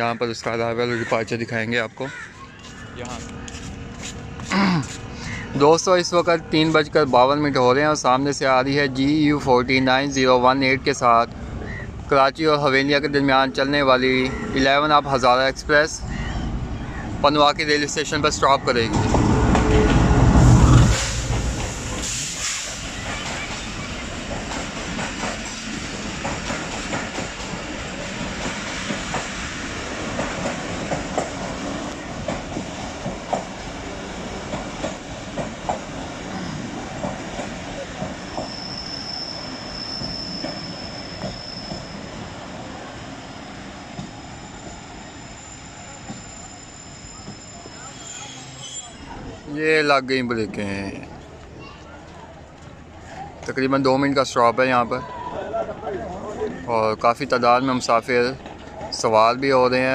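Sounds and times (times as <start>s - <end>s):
locomotive engine rumble: 14.2s - 38.7s
high brake squeal: 20.7s - 24.0s, 38.2s - 42.4s, 43.2s - 49.3s.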